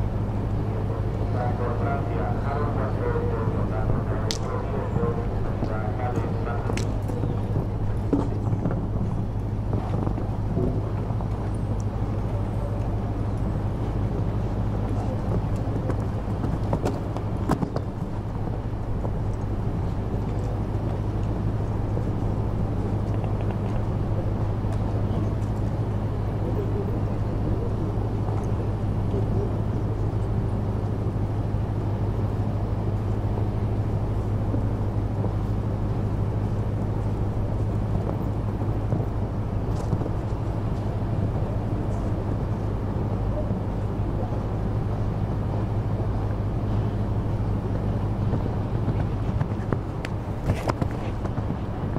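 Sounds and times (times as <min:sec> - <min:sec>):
steady low hum: 0:00.0 - 0:51.9.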